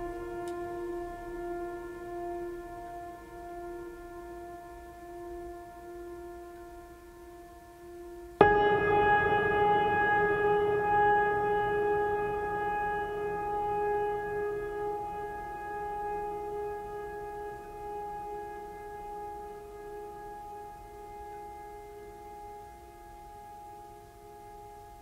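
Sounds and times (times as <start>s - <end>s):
bell-like chord ringing: 0.0s - 25.0s.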